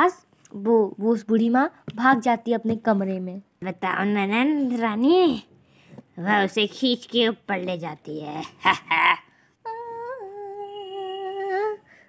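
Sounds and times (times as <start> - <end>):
woman humming a held note: 9.7 - 11.8.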